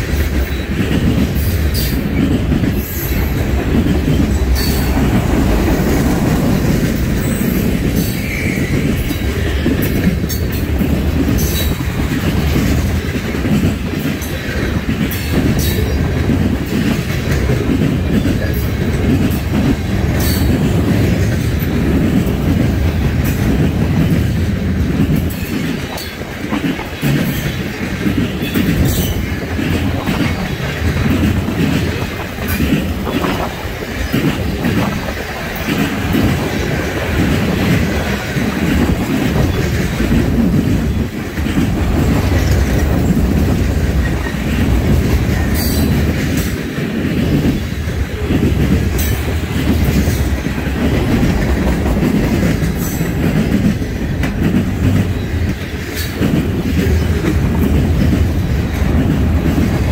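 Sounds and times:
steel wheels rumbling on rail: 0.0 - 59.9
train clicks and clanks: 0.0 - 59.9.

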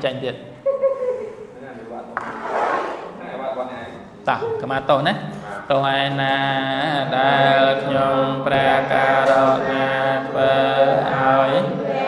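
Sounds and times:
person chanting slowly: 5.6 - 12.0.

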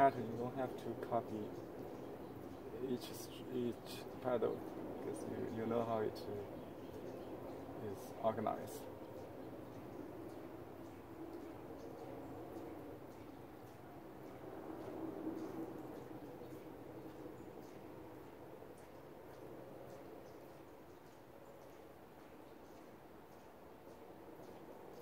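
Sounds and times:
steady background hum: 0.0 - 25.0.

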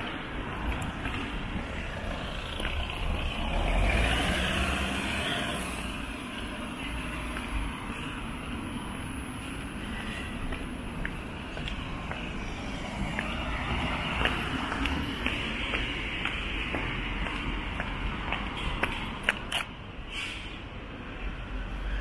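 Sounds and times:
low rumble of traffic: 0.0 - 22.0
vehicle passing close by: 1.7 - 5.9.

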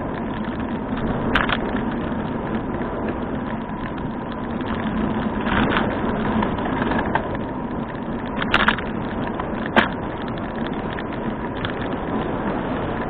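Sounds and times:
road and wind noise: 0.0 - 13.0.

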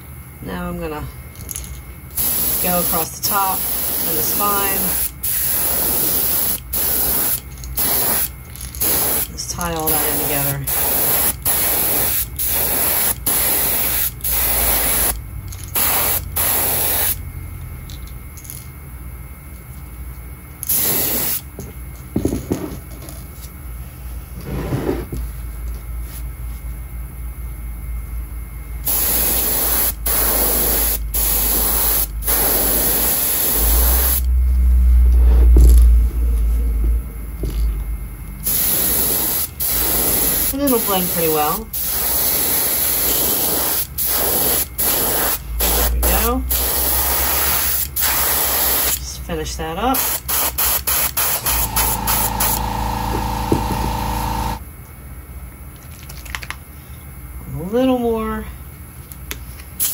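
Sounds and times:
airbrush spraying paint: 1.6 - 17.2, 20.6 - 21.5, 28.8 - 34.3, 38.4 - 49.0, 49.9 - 54.6
low rumble: 34.2 - 38.4.

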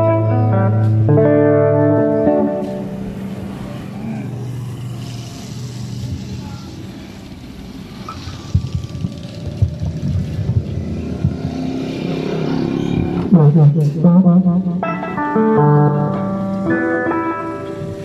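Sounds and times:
motorcycle engine running: 1.8 - 16.8
low knocks and bumps: 8.5 - 12.0.

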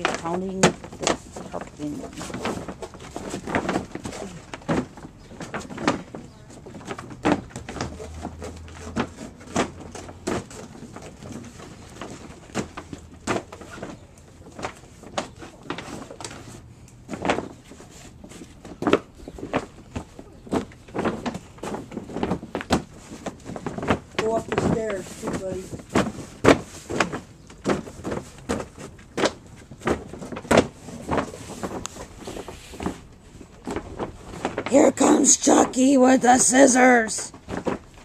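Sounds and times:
plastic pond liner crinkling: 0.0 - 38.0.

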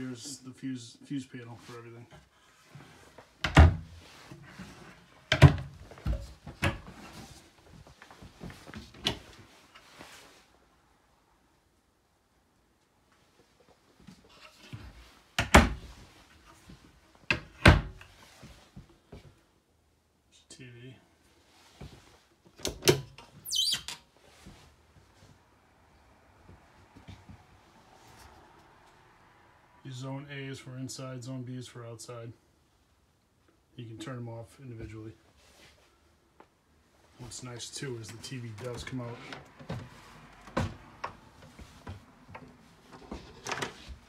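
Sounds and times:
short high squeak: 23.4 - 24.0.

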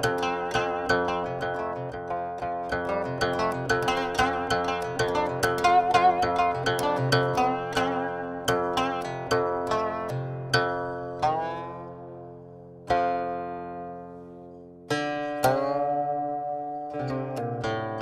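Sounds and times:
plucked string instrument: 0.0 - 18.0.

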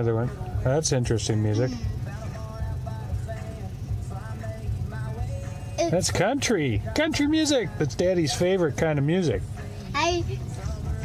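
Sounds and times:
country music on car radio: 0.0 - 11.0
low steady hum: 0.0 - 11.0.

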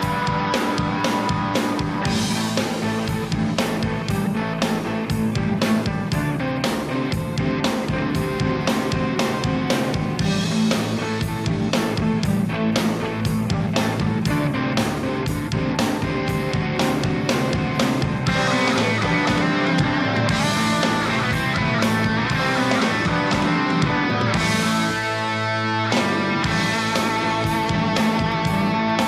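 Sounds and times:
rock music with guitar bass and drums: 0.0 - 29.0.

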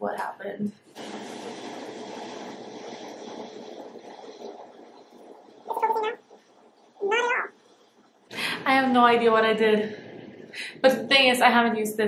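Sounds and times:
steady noise: 0.8 - 11.8
cat meowing: 7.0 - 7.5.

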